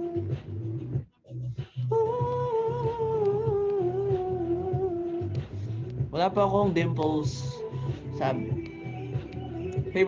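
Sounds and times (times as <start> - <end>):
low pulsing bass: 0.0 - 10.0.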